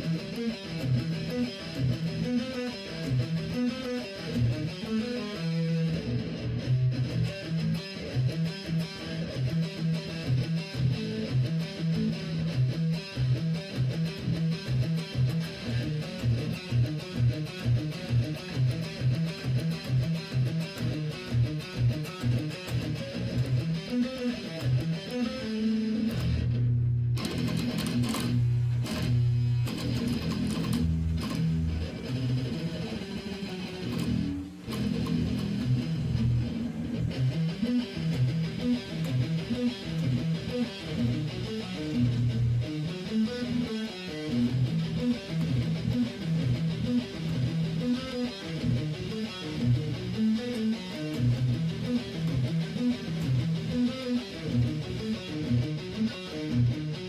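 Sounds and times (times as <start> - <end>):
electric guitar playing heavy riffs: 0.0 - 57.0.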